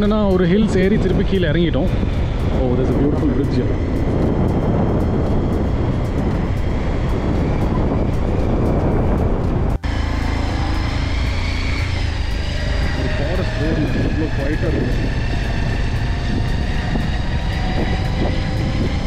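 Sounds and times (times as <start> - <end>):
motorcycle engine cruising: 0.0 - 19.0
steady whine: 0.0 - 19.0
wind rumbling on microphone: 0.0 - 19.0.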